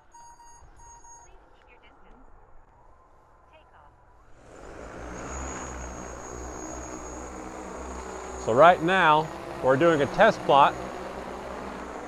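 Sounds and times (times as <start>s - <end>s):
short electronic beeps: 0.0s - 1.5s.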